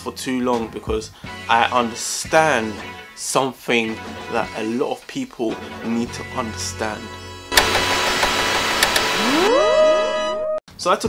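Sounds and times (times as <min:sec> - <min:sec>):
background music: 0:00.0 - 0:10.6
sharp clicks: 0:07.5 - 0:09.2.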